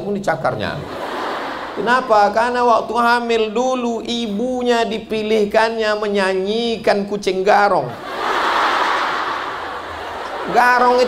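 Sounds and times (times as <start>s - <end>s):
large audience laughing: 0.8s - 2.4s, 7.9s - 11.0s.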